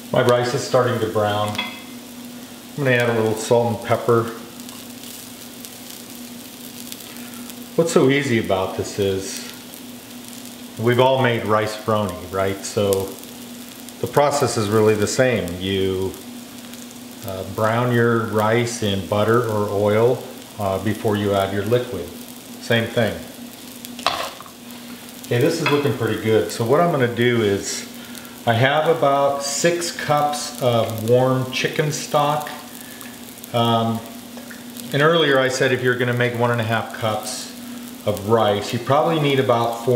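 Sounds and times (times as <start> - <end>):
faint steady hum: 0.0 - 39.9
rice sizzling in oil: 0.0 - 39.9.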